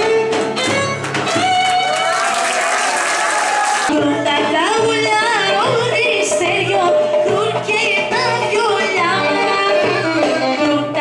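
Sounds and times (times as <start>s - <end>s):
live folk band music: 0.0s - 2.3s, 3.9s - 11.0s.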